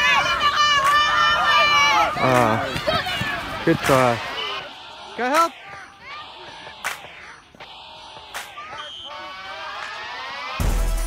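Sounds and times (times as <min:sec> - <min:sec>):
children shouting: 0:00.0 - 0:10.8.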